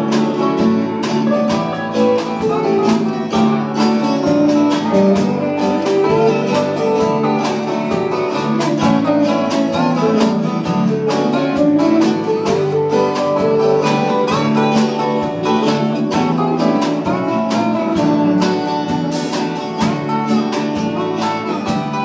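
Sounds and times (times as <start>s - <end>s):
acoustic guitar strumming: 0.0s - 22.0s
slide guitar sliding notes: 0.0s - 22.0s.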